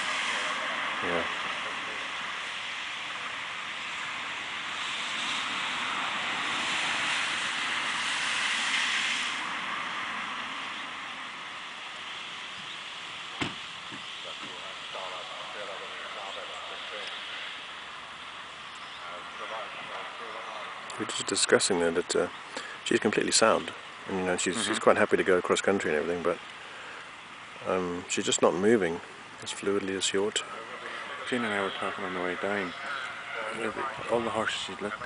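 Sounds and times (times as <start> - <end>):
faint distant voices: 0.0 - 3.4, 13.5 - 35.0
wind through trees: 0.0 - 35.0
sharp knock: 13.4 - 14.1.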